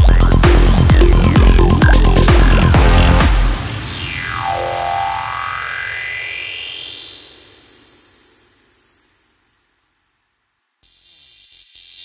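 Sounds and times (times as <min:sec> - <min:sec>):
rising synthesizer sweep: 0:00.0 - 0:09.4
psytrance track: 0:00.0 - 0:10.0.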